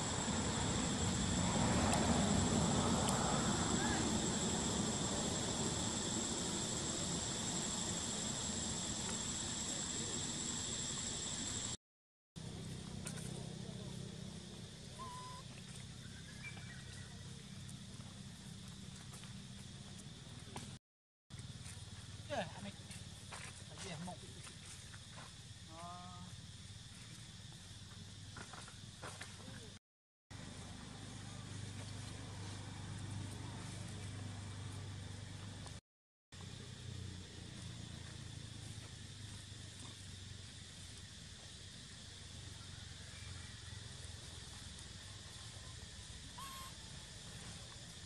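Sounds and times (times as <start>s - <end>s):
faint high insect-like drone: 0.0s - 11.8s, 12.4s - 20.7s, 21.4s - 29.6s, 36.4s - 48.0s
steady low hum: 0.0s - 11.8s
animal call: 15.0s - 15.4s, 46.3s - 46.8s
macaque calls: 46.4s - 46.8s.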